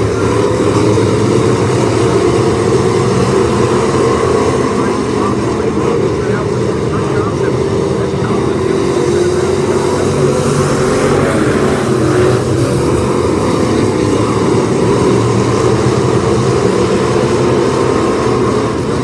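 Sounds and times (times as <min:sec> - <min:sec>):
race car engines roaring: 0:00.0 - 0:19.0.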